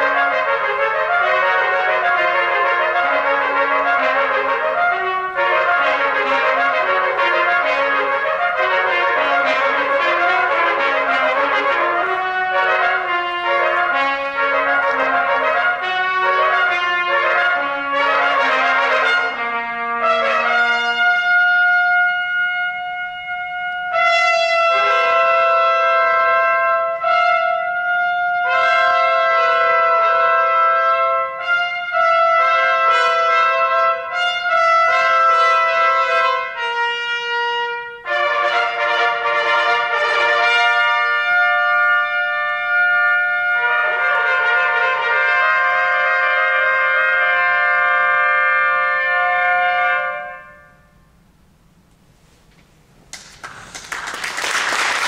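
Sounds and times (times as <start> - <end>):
trumpets playing together: 0.0 - 51.6.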